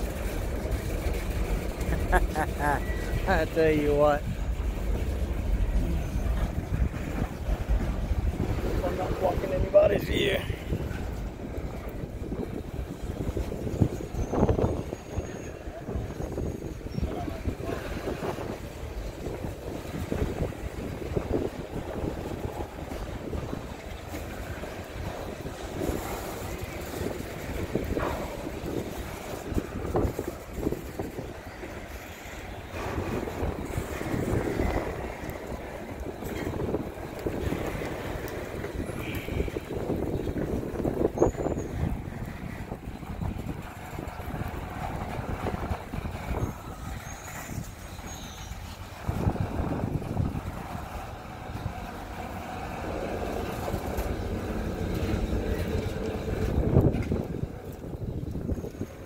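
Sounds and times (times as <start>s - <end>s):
freight cars rolling on rails: 0.0s - 59.0s.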